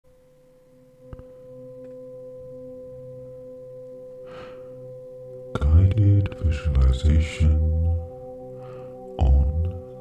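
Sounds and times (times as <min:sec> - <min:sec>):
sustained drone tone: 0:00.7 - 0:10.0.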